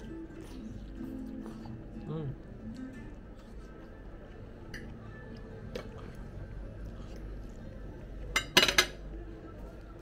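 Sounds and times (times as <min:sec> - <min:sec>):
forks clinking on plates: 0:08.4 - 0:09.0.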